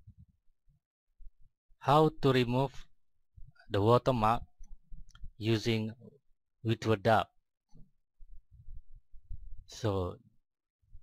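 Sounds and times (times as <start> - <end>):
man speaking: 1.8 - 2.9, 3.7 - 4.4, 5.4 - 7.3, 9.7 - 10.2.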